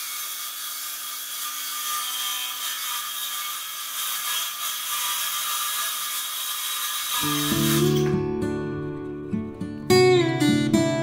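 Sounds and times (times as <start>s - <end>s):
circular saw cutting wood: 0.0s - 8.2s.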